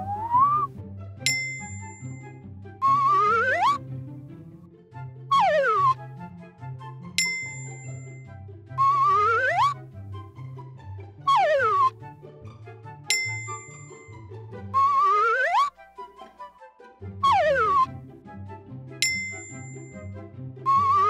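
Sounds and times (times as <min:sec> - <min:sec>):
slide whistle swooping: 0:00.0 - 0:00.7, 0:02.8 - 0:03.8, 0:05.3 - 0:06.0, 0:07.2 - 0:08.1, 0:08.8 - 0:09.8, 0:11.3 - 0:12.0, 0:14.8 - 0:15.8, 0:17.2 - 0:17.9, 0:20.7 - 0:21.0
cartoon background music with bass: 0:00.0 - 0:21.0
bell ding: 0:01.3 - 0:02.3, 0:07.2 - 0:08.2, 0:13.1 - 0:14.1, 0:19.0 - 0:20.1.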